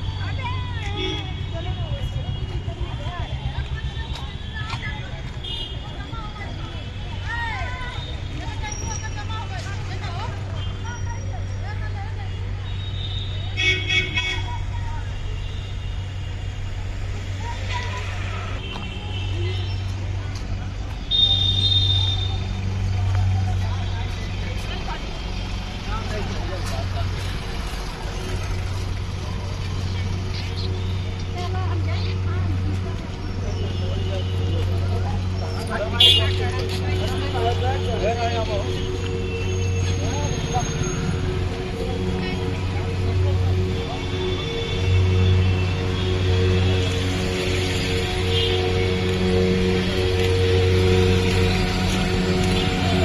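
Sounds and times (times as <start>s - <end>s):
vehicle horns tooting: 0.0s - 6.1s, 12.2s - 16.5s, 21.1s - 22.6s, 33.2s - 53.0s
people chattering: 0.0s - 53.0s
steady low traffic hum: 0.0s - 53.0s.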